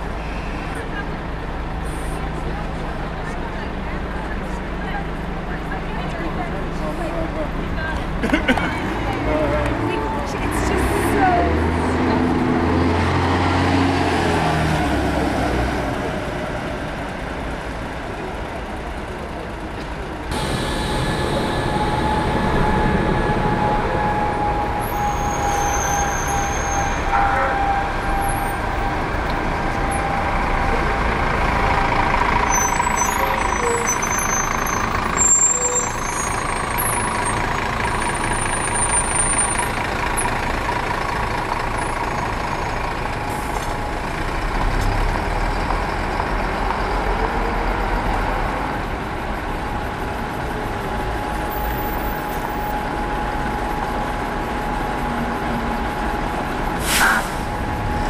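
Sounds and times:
diesel bus engines: 0.0 - 58.0
faint steady whine: 20.3 - 25.4.

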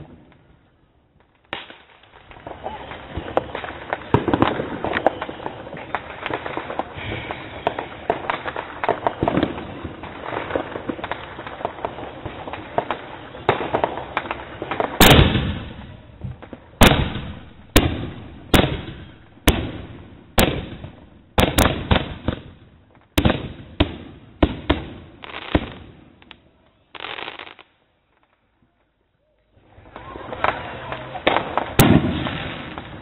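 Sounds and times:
fireworks crackling: 0.0 - 33.0
fireworks bangs echoing: 1.4 - 26.3, 29.7 - 33.0.

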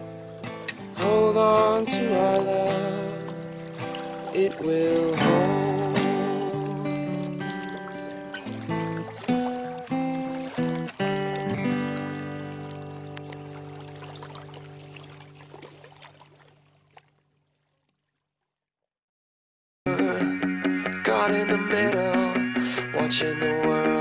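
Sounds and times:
acoustic guitar picking: 0.0 - 15.4, 19.9 - 24.0.

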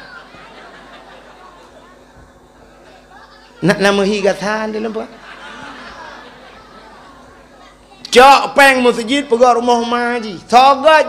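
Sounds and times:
murmur of voices in a hall: 0.0 - 11.0.

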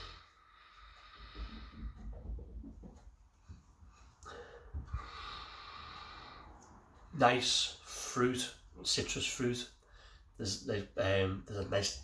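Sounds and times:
low bumps: 1.2 - 5.3.

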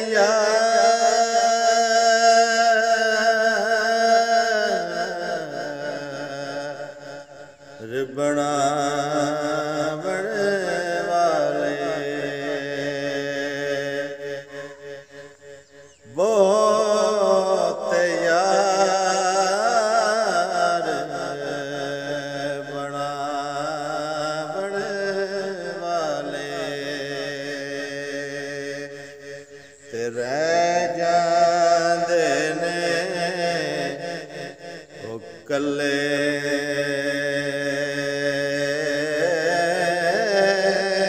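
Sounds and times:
man singing: 0.0 - 41.0.

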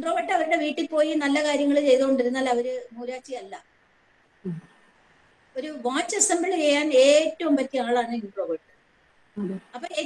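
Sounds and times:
woman speaking: 0.0 - 3.6, 5.6 - 8.6, 9.4 - 10.0.

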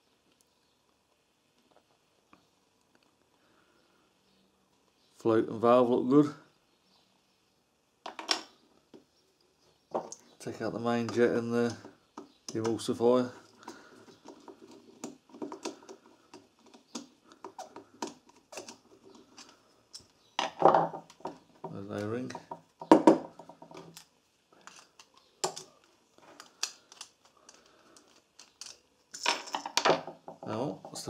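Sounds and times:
small parts tapped on wooden bench: 8.1 - 9.1, 9.9 - 10.2, 20.0 - 24.0.

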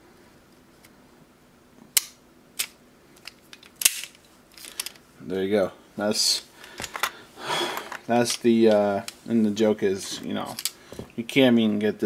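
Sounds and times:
metal pistol parts clicking: 2.0 - 5.0, 10.5 - 10.8.

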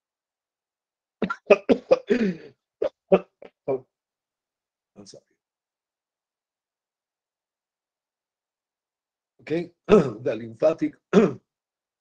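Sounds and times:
man coughing: 1.2 - 3.5, 9.9 - 10.2, 11.1 - 11.4.

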